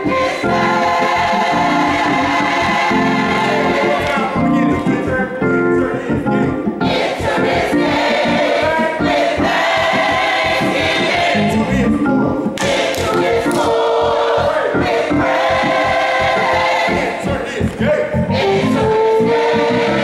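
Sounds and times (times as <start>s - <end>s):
choir singing: 0.0s - 20.0s.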